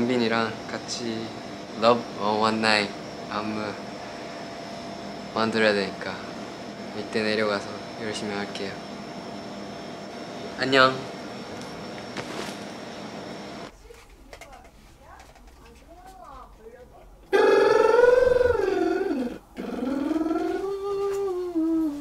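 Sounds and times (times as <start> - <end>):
air conditioning hum: 0.0 - 22.0
faint voice: 17.3 - 22.0.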